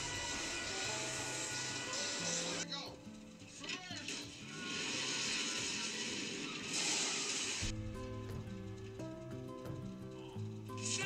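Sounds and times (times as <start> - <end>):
snow spraying hiss: 0.0 - 2.6, 4.1 - 7.8
music with held chords: 7.7 - 11.0.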